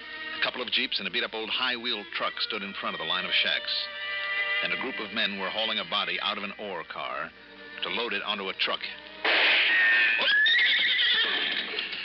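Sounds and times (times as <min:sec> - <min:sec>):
gunshot: 0:09.2 - 0:10.2
horse whinnying: 0:09.6 - 0:12.0.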